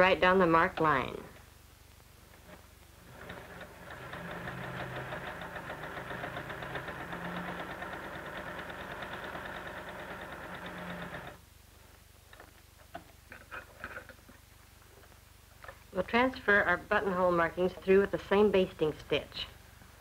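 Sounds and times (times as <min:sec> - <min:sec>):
electric sewing machine stitching: 0:02.5 - 0:11.4.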